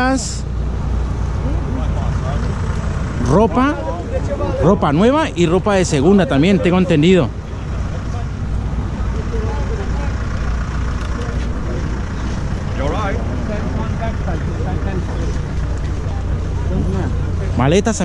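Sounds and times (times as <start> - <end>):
people talking: 0.0 - 0.5, 1.4 - 8.4, 9.0 - 10.3, 12.7 - 18.0
steady low rumble: 0.0 - 18.0.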